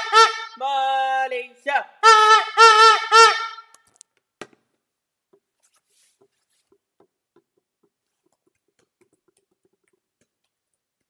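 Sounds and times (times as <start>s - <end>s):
plastic horn buzzing blasts: 0.0s - 0.6s, 2.0s - 3.8s.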